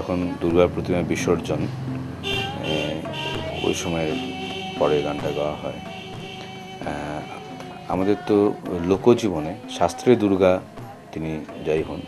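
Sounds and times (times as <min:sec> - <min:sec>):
sustained instrumental tone: 0:00.8 - 0:10.8.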